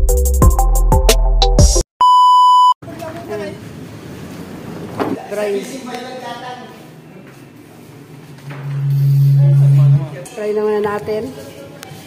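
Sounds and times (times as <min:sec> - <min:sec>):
high test-tone beep: 0:08.5 - 0:10.0.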